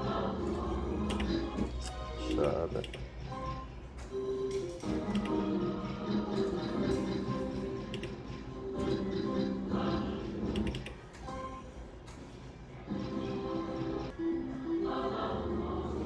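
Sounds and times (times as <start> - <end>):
electronic slot machine melody: 0.1 - 11.9, 12.9 - 16.0.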